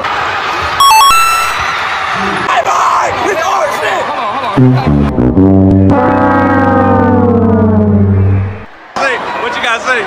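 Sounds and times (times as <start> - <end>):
low brass note sagging: 4.9 - 8.7.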